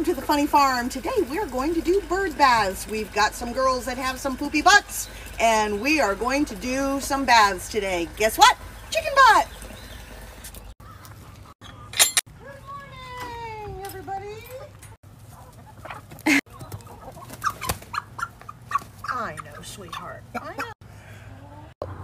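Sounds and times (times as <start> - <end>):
hens clucking and squawking: 14.7 - 22.0.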